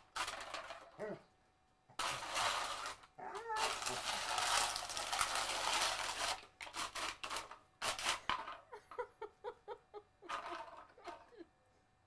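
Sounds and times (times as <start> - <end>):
can scraping across concrete: 2.0 - 3.1, 3.7 - 8.4.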